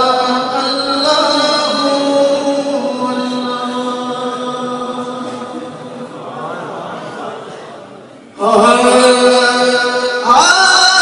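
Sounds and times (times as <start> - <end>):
man singing unaccompanied: 0.0 - 5.2, 8.4 - 11.0.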